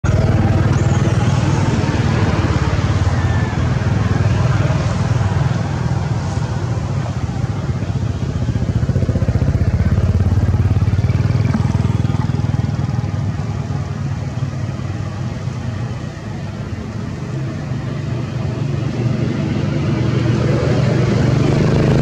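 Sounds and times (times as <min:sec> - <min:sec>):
motor running with low rumble: 0:18.9 - 0:22.0.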